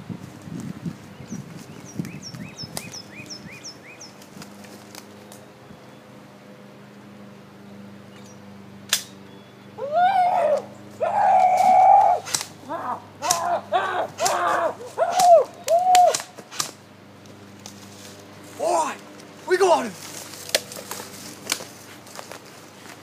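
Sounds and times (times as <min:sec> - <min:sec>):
bird chirping: 0:01.0 - 0:04.3, 0:07.6 - 0:09.9
sharp cracks: 0:08.9 - 0:09.2, 0:11.3 - 0:16.8
person imitating ape hoots: 0:09.8 - 0:16.1.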